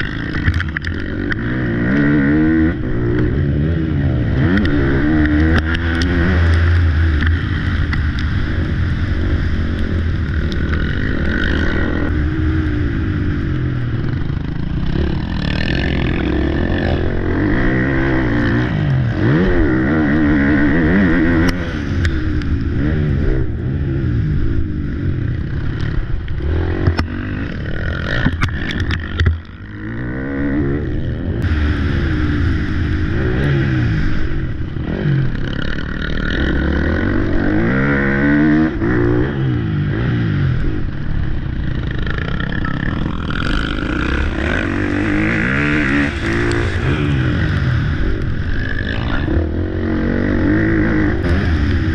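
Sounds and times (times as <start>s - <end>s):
motorbike engine revving: 0.0s - 51.9s.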